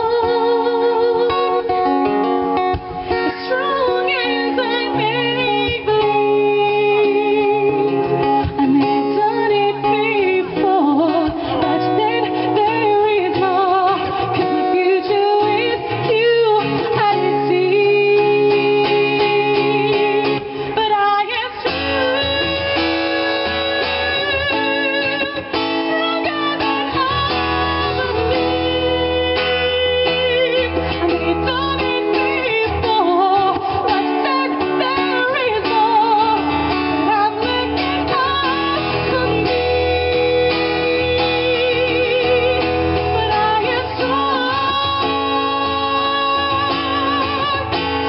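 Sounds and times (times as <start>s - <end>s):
acoustic guitar: 0.0s - 48.0s
woman singing with vibrato: 0.0s - 48.0s.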